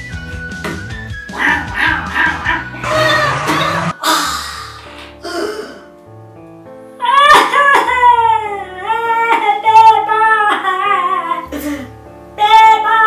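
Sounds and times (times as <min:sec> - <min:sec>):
background music: 0:00.0 - 0:13.0
sharp musical accent: 0:01.3 - 0:04.0.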